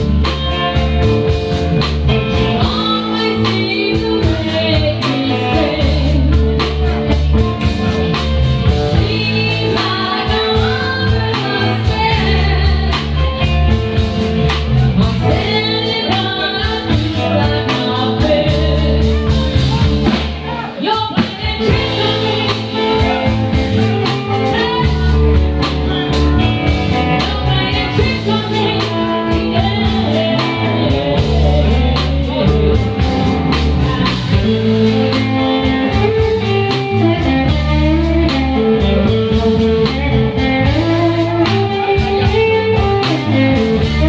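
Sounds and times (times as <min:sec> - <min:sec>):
bass guitar: 0:00.0 - 0:44.0
drum kit beat: 0:00.0 - 0:44.0
electric guitar: 0:00.0 - 0:44.0
woman singing: 0:02.3 - 0:07.2, 0:08.9 - 0:44.0.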